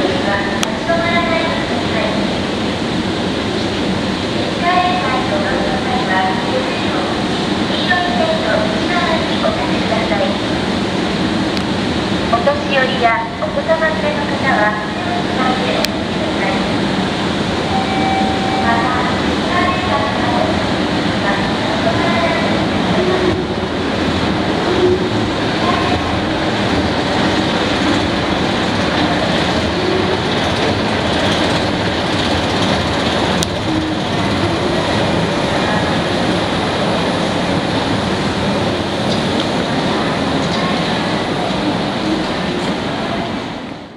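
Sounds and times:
escalator rumble and hiss: 0.0s - 43.9s
outdoor city noise: 0.0s - 43.9s.

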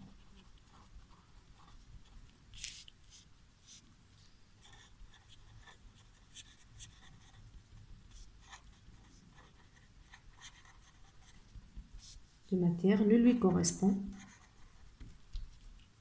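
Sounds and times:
pen writing on paper: 4.6s - 7.4s, 8.1s - 11.4s.

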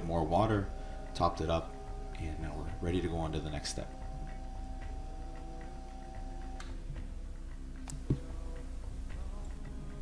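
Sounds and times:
regular ticking: 0.0s - 10.0s.

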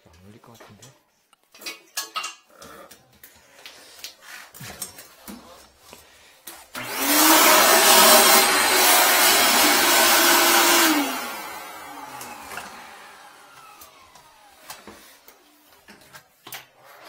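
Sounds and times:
shop vacuum motor running: 6.7s - 15.4s.

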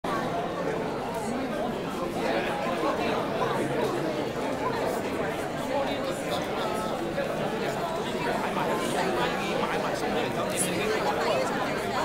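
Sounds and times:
murmur of overlapping voices: 0.1s - 12.0s.

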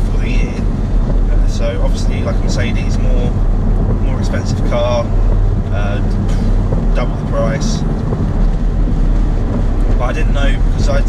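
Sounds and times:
car engine cruising: 0.0s - 11.0s
road noise inside car: 0.0s - 11.0s.

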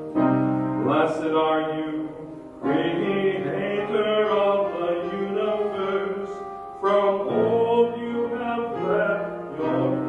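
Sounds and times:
congregation singing a hymn: 0.8s - 10.0s.

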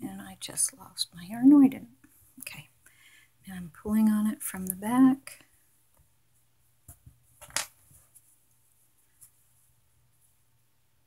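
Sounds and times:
soft yarn rustles: 3.4s - 10.8s.

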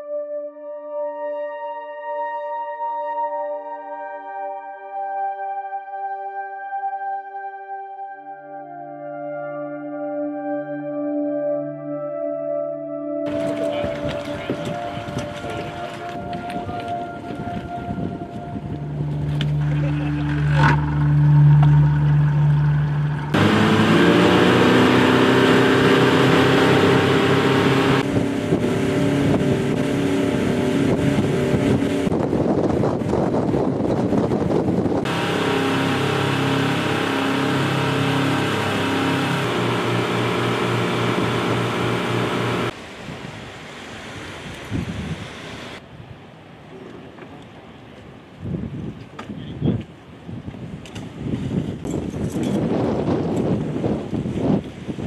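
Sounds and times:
wind on microphone: 13.3s - 19.9s, 28.0s - 35.2s, 44.1s - 46.2s, 48.3s - 55.0s
boat engines running: 13.3s - 42.8s.

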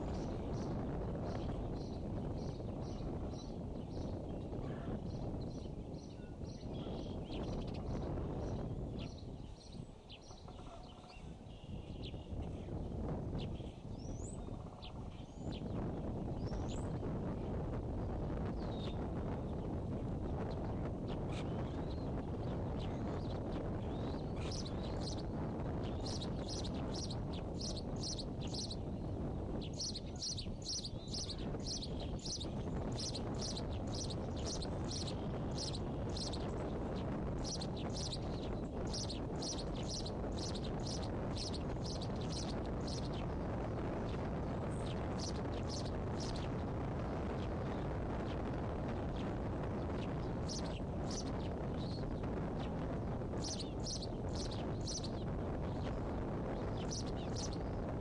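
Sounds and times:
eaglet chicks peeping: 20.4s - 48.4s, 49.0s - 57.8s.

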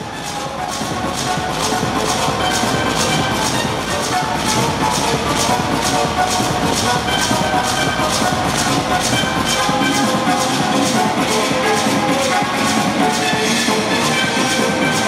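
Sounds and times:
techno music: 0.0s - 15.0s.

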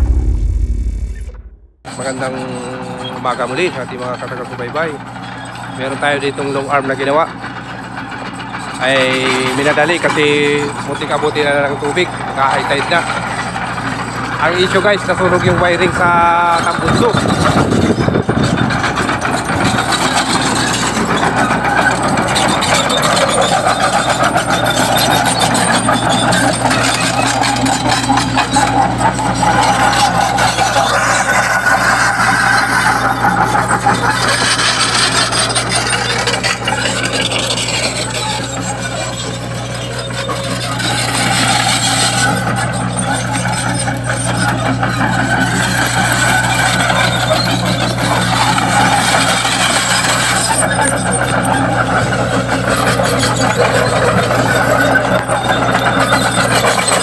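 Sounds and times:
excavator diesel engine humming: 0.0s - 57.0s.

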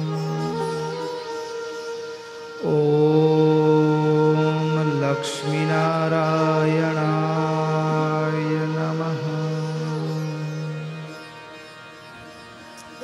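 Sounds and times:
man chanting low held notes: 2.6s - 11.7s.

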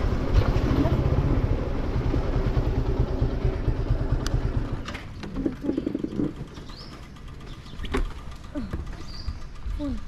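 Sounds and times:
low steady rumble: 0.0s - 10.0s
high bird chirp: 5.7s - 8.0s, 8.9s - 9.8s.

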